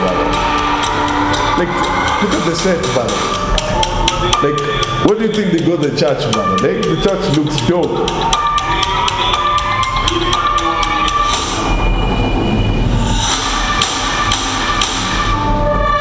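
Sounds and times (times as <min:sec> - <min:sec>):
held musical tones: 0:00.0 - 0:16.0
knocking percussion hits: 0:00.0 - 0:16.0
deep rumble: 0:11.4 - 0:14.3.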